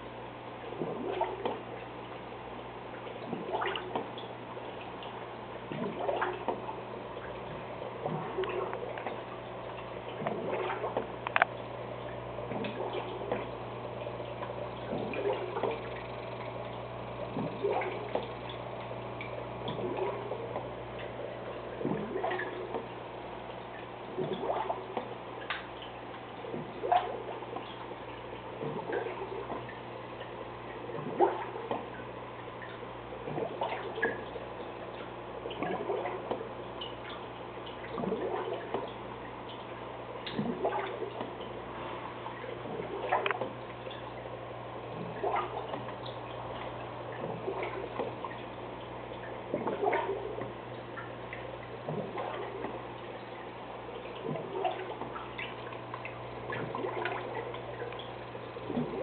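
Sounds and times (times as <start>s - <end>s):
aquarium filter hum: 0.0s - 59.0s
water bubbling and trickling: 0.0s - 59.0s.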